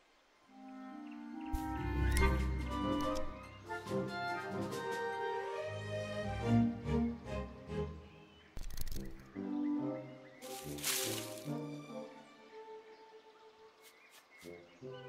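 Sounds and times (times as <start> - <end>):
orchestral cartoon music: 0.5 - 13.8, 14.5 - 15.0.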